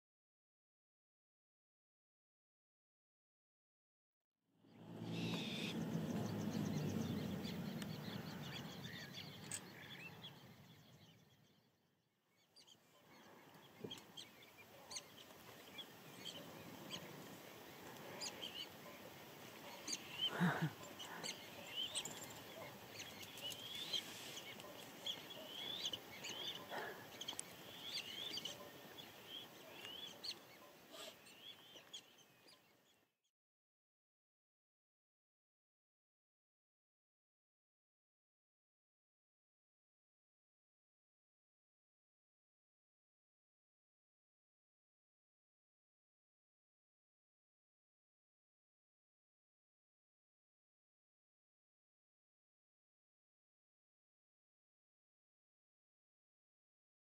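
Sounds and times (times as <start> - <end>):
birds chirping and calling: 4.7 - 11.6, 12.6 - 32.9.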